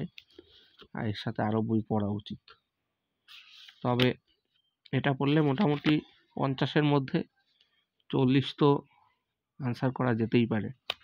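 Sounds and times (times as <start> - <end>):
man speaking: 0.9 - 2.6, 4.9 - 7.4, 8.1 - 8.9, 9.6 - 10.8.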